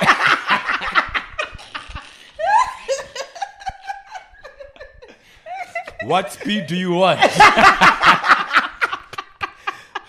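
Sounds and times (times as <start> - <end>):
men laughing hard: 0.0 - 10.0.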